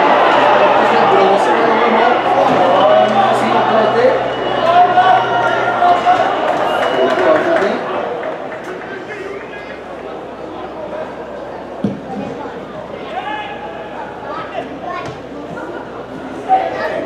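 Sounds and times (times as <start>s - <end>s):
crowd shouting and talking: 0.0s - 17.0s.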